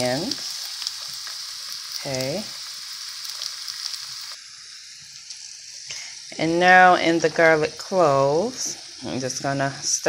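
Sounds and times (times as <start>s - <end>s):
oil popping and crackling: 0.0s - 4.4s, 5.0s - 6.1s
vegetables sizzling in oil: 0.0s - 10.0s.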